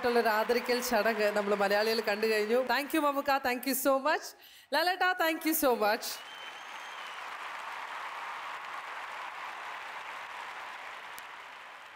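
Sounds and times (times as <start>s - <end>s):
audience applauding: 0.0s - 3.2s, 6.1s - 11.9s.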